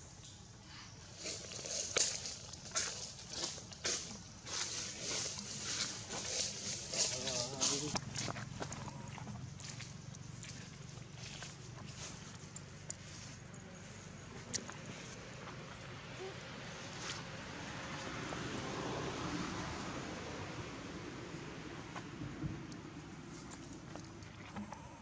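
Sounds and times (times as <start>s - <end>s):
leaves and twigs rustling: 1.1s - 15.1s.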